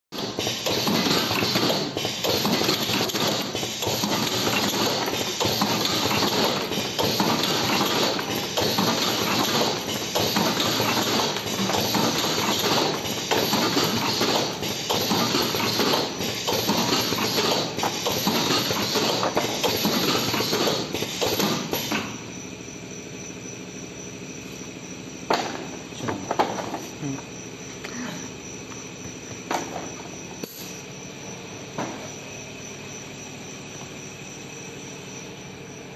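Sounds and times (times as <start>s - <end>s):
sharp mechanical knocks: 0.1s - 22.2s
machine clattering: 0.2s - 22.1s.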